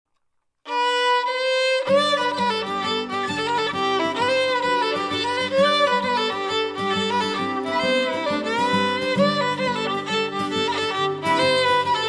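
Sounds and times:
fiddle bowing long notes: 0.7 - 12.0
acoustic guitar: 1.2 - 12.0.

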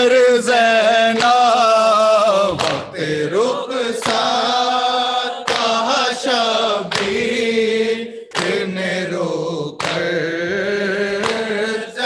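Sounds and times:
men chanting in unison: 0.0 - 12.0
hands slapping chests: 2.5 - 3.0, 4.0 - 4.4, 5.4 - 6.0, 6.9 - 7.2, 8.3 - 8.7, 9.8 - 10.1, 11.2 - 11.6.

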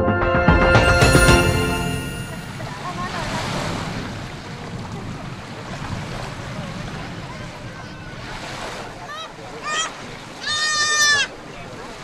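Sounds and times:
small waves washing ashore: 1.1 - 12.0
distant voices: 2.4 - 12.0
wind on microphone: 2.5 - 9.6.

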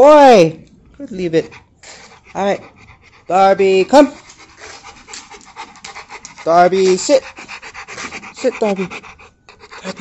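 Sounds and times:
dog panting: 1.0 - 10.0.

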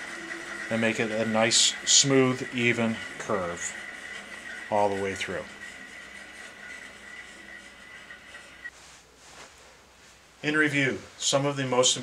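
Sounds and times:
bandsaw whine: 0.0 - 8.7.

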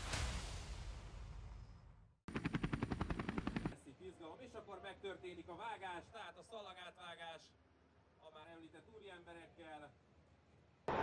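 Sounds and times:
helicopter rotor chop: 2.3 - 3.8.

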